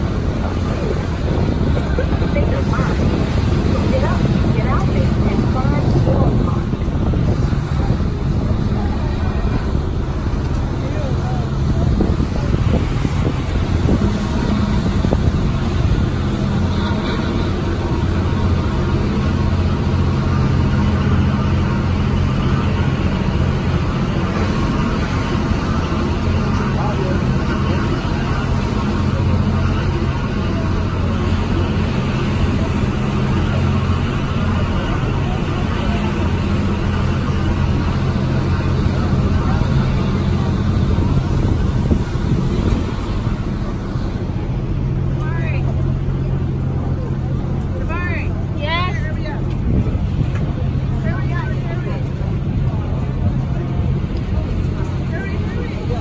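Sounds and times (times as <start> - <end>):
ferry engines droning: 0.0 - 56.0
wind and water rushing: 0.0 - 56.0.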